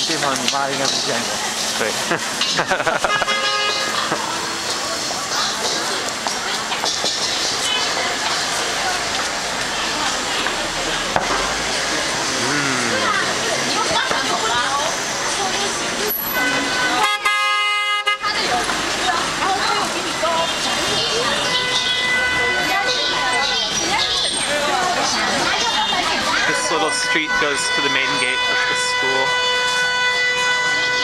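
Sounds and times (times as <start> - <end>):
busy street hubbub: 0.0 - 31.0
vehicle horn: 2.9 - 4.2, 16.3 - 18.6, 20.4 - 23.8, 25.7 - 31.0.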